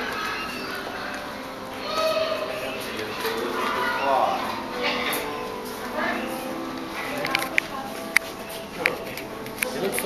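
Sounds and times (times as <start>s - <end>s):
background music: 0.0s - 10.0s
indistinct voices: 0.0s - 10.0s.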